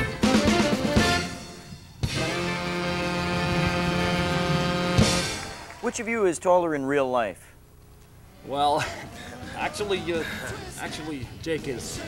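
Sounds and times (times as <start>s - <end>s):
band holding sustained chord: 1.2s - 5.4s.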